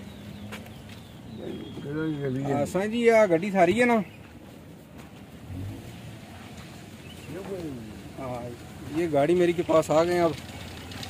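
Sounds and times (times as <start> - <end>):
vehicle engine running: 5.1 - 11.0.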